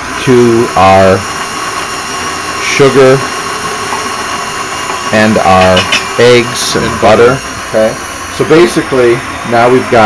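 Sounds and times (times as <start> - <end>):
stand mixer motor running: 0.0 - 10.0.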